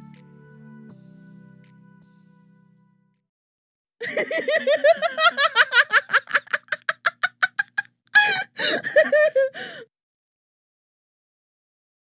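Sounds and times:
person laughing hard: 4.0s - 9.8s
gasping breath: 8.2s - 9.9s.

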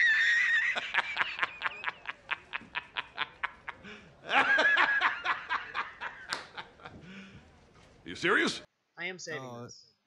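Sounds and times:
man laughing hard: 0.0s - 6.3s.

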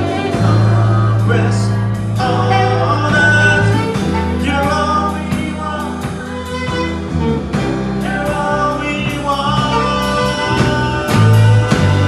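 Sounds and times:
gospel band with singing: 0.0s - 12.0s.

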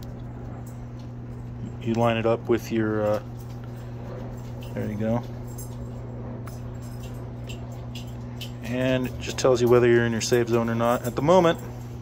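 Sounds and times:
hot tub pump humming: 0.0s - 12.0s.

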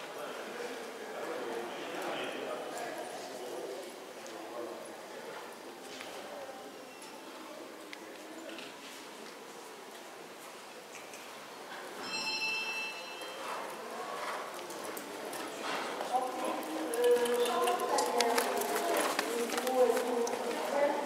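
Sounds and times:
high ringing tone: 12.0s - 13.6s
people talking: 12.0s - 21.0s
horse hoofbeats on sand: 14.2s - 20.7s.

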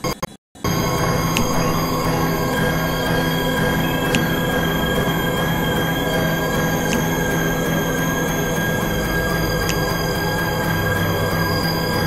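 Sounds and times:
high-pitched whining tones: 0.0s - 12.0s
noisy low hum: 0.6s - 12.0s.

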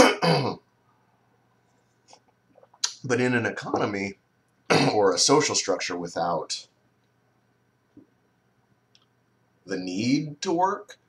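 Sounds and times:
man clearing his throat: 0.0s - 0.6s, 4.7s - 5.1s.

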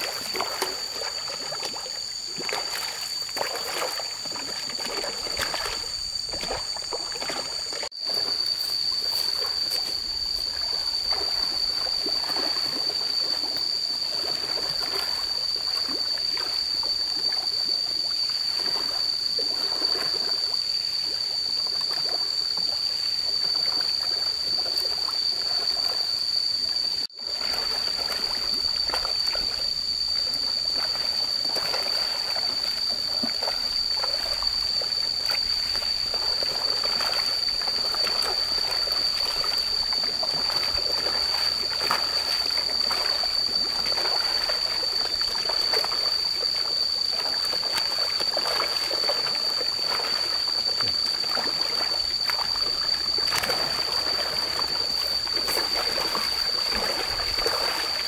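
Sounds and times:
steady high-pitched whine: 0.0s - 58.0s
fish splashing at water surface: 30.3s - 50.5s, 51.3s - 58.0s.

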